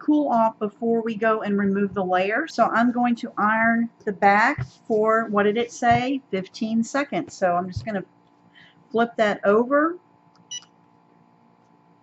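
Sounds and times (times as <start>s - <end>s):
faint steady hum: 0.0s - 12.0s
heat press beep: 10.5s - 10.7s.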